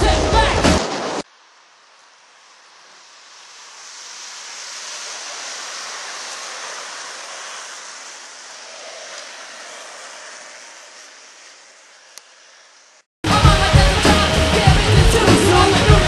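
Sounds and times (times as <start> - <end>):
longboard wheels rolling on asphalt: 0.0 - 16.0.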